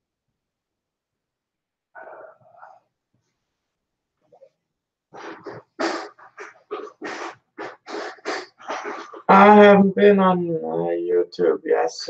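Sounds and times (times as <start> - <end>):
rapid breathy panting: 5.2 - 9.3.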